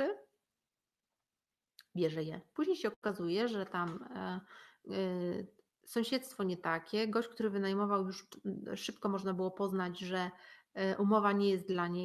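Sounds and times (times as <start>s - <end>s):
woman speaking: 0.0s - 0.3s, 1.8s - 12.0s.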